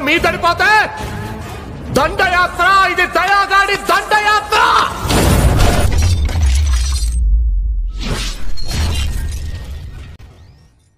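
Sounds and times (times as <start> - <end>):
glass shattering: 5.1 - 7.2.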